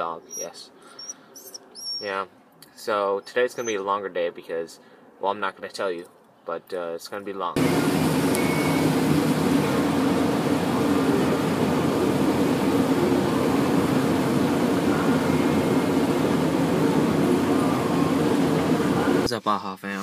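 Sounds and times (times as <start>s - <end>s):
low engine drone: 7.6s - 19.3s.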